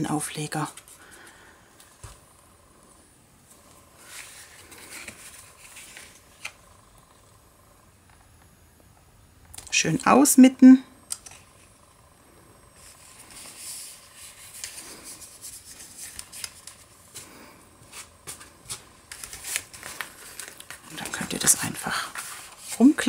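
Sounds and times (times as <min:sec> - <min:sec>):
paper rustling: 0:04.0 - 0:06.6, 0:12.8 - 0:23.0.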